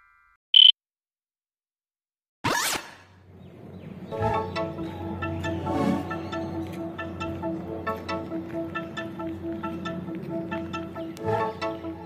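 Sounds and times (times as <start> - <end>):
high-pitched electronic beep: 0.0 - 0.8.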